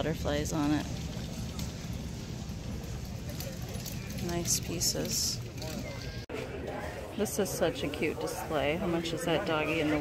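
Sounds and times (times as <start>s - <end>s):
market background rumble: 0.0s - 10.0s.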